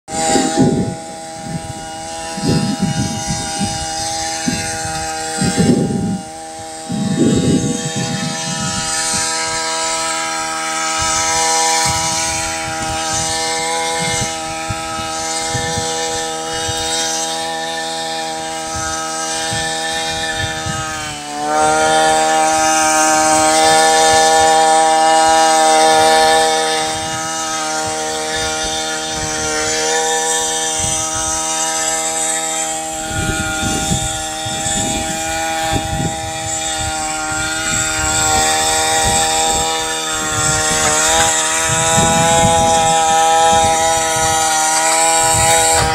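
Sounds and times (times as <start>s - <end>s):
brush cutter engine running: 0.0s - 45.9s
weeder head churning muddy soil: 0.0s - 45.9s.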